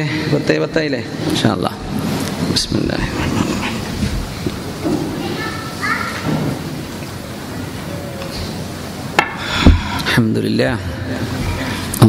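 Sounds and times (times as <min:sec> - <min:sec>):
steady rushing noise: 0:00.2 - 0:07.8.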